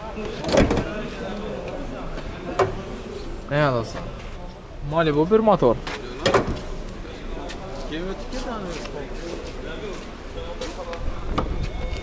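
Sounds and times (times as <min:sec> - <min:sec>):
distant voices talking: 0:00.0 - 0:12.0.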